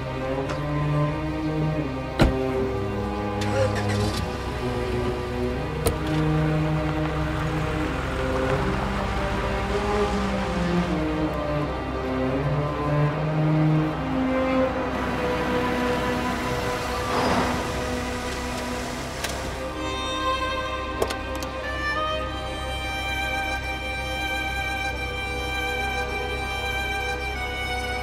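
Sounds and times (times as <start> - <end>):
low sustained music score: 0.0 - 28.0.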